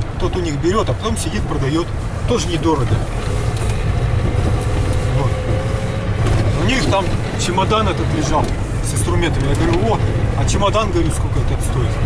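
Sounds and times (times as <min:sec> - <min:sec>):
vehicle engine drone: 0:00.0 - 0:12.0.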